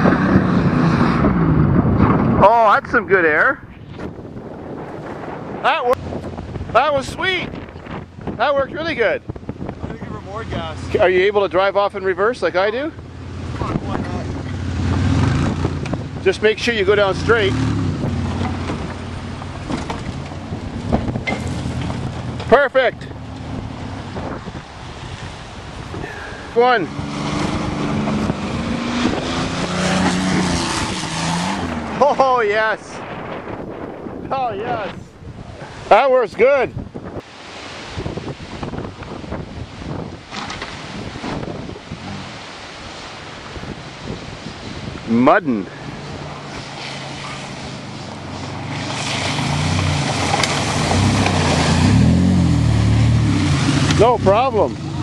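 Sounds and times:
van engine revving: 0.0s - 2.7s, 13.0s - 24.8s, 26.5s - 32.1s, 46.2s - 55.0s
steady rush of noise: 0.0s - 40.3s
van engine accelerating: 46.3s - 55.0s.

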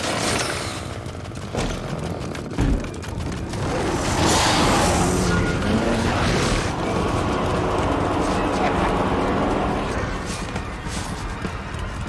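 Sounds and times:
swell of noise: 3.3s - 12.0s.

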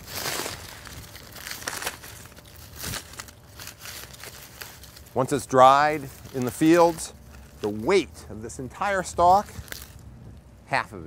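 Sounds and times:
dry corn husks crinkling: 0.0s - 10.1s.

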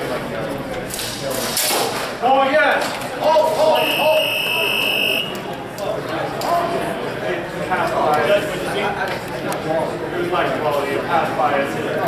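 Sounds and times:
people calling out: 3.4s - 5.6s
electronic timer buzzer beep: 3.7s - 5.4s.

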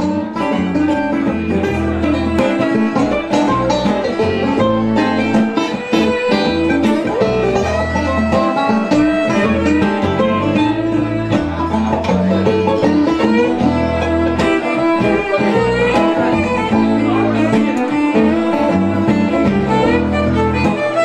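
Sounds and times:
banjo picking quick rolls: 0.0s - 21.0s
strummed acoustic guitar: 0.0s - 21.0s
upright bass walking low notes: 0.0s - 21.0s.

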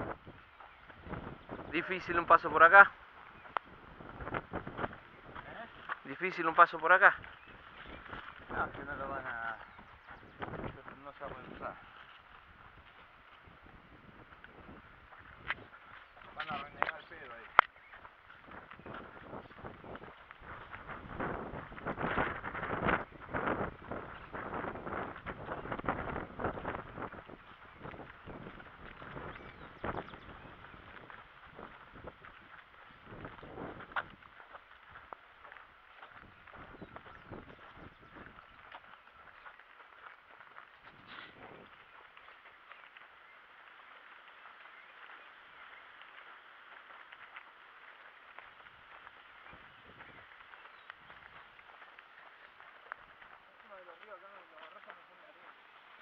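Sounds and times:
wind buffeting microphone: 0.0s - 40.0s, 40.8s - 43.4s, 48.6s - 54.0s
footsteps on dirt track: 0.0s - 56.0s.

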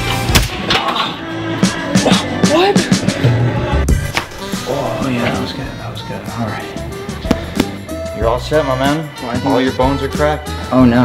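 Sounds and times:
background music: 0.0s - 11.0s
hand slapping bare back: 7.2s - 7.9s.

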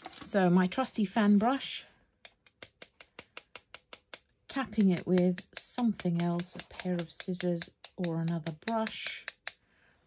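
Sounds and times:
brush tapping clicks: 2.2s - 9.6s.

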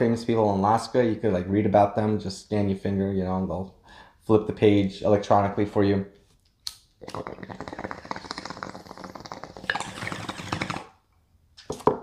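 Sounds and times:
bong bubbling: 7.0s - 11.0s.

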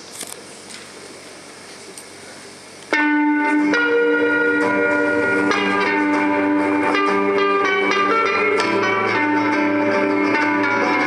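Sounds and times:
room noise: 0.0s - 11.0s
amplified guitar ringing notes: 2.9s - 11.0s.

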